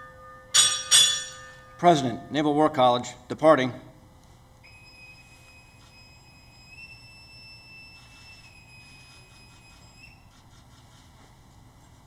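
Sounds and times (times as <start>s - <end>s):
boatswain's pipe whistle: 4.7s - 10.3s.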